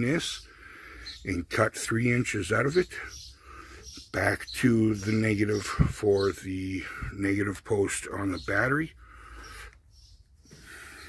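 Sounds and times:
man breathing softly: 0.4 - 1.2, 3.4 - 3.9, 9.0 - 11.0.

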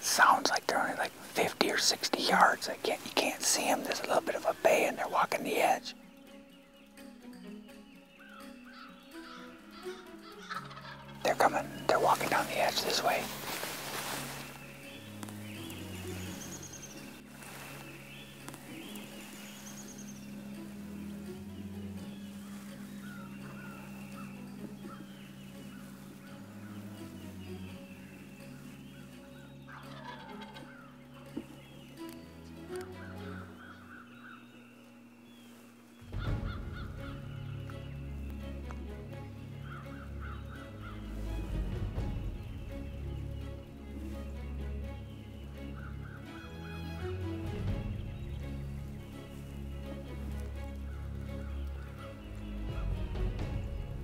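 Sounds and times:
low background music: 0.0 - 54.0
wild turkeys gobbling: 8.1 - 14.5, 18.4 - 31.9, 32.7 - 37.8, 39.6 - 41.4.

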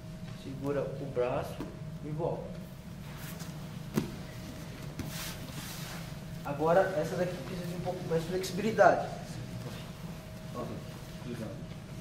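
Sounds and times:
room hum: 0.0 - 12.0
bodies shifting on mats: 3.0 - 6.3
fabric rustling: 3.0 - 6.3.

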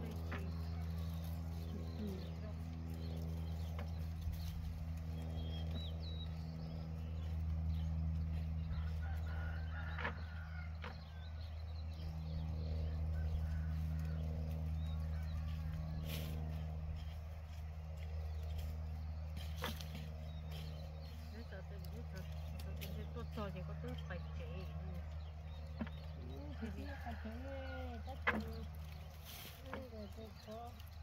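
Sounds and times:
low engine drone: 0.0 - 31.0.

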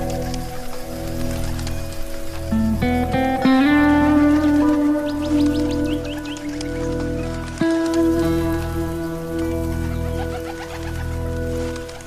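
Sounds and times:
guitar chords ringing: 0.0 - 12.0
instrumental rock music: 0.0 - 12.0.

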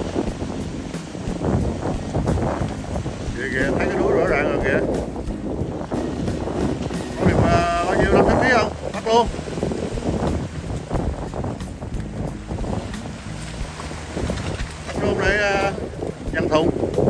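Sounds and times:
surf breaking over rocks: 0.0 - 17.0
wind buffeting microphone: 0.0 - 17.0.

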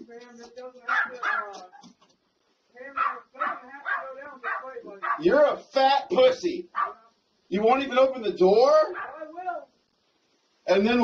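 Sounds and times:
dog barking: 0.9 - 1.7, 2.8 - 5.4, 6.7 - 7.1, 8.9 - 9.4.

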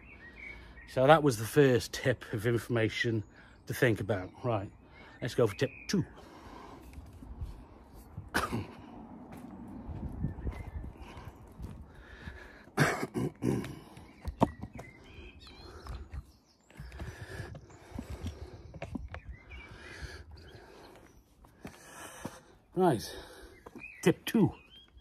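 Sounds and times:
low rumble on microphone: 7.2 - 12.2
man coughing and clearing throat: 8.3 - 9.0, 12.8 - 14.0.

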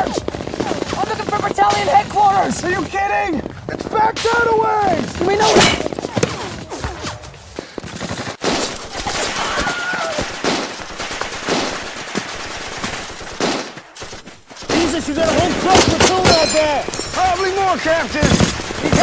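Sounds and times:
rifle and machine-gun fire: 0.0 - 6.5, 7.9 - 19.0.

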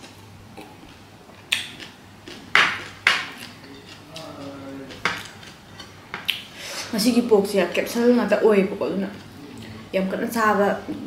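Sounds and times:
fingers mixing rice on plate: 1.5 - 6.4.

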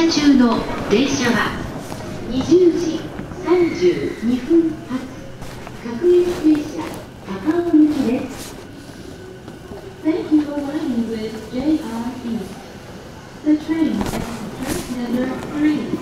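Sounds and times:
public address announcement: 0.0 - 16.0.

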